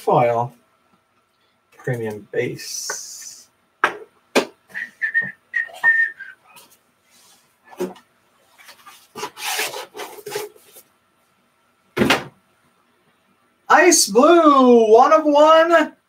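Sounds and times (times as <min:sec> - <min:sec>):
plastic sliding rub: 0:08.5 - 0:10.9.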